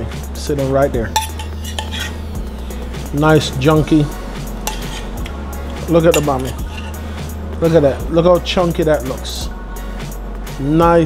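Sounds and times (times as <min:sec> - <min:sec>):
steady low hum: 0:00.2 - 0:10.5
metal spoon clinking on dishes: 0:01.2 - 0:02.2, 0:04.6 - 0:07.0.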